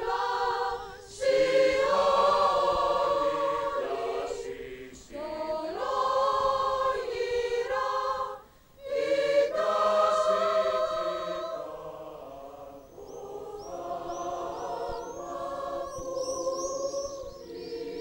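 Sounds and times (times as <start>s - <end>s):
choir singing long held notes: 0.0s - 18.0s.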